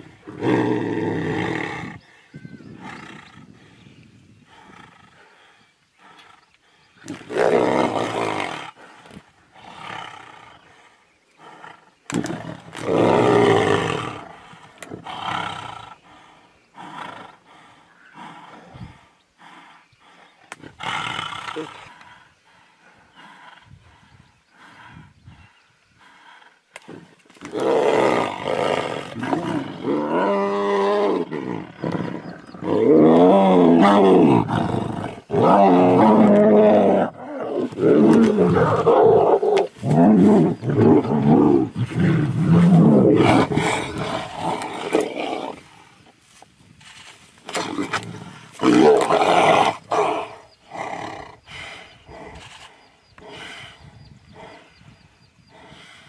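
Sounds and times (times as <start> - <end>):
tigers snarling and roaring: 0.0 - 2.0, 7.0 - 23.9, 26.1 - 46.1, 47.4 - 54.9.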